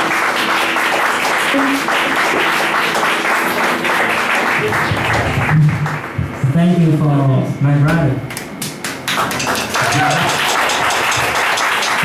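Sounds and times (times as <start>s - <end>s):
audience clapping: 0.0s - 6.2s, 8.3s - 12.0s.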